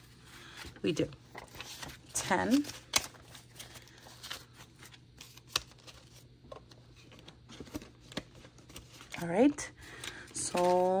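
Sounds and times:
banknotes rustling: 0.0s - 11.0s.

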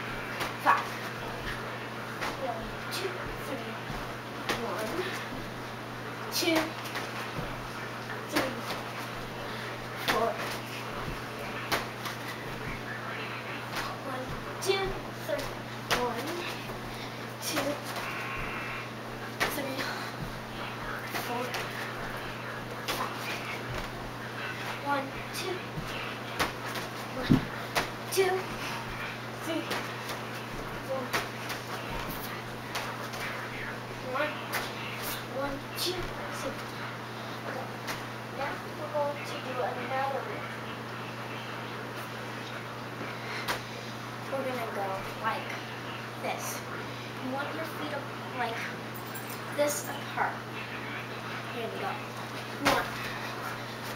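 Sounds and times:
steady low hum: 0.0s - 53.9s.

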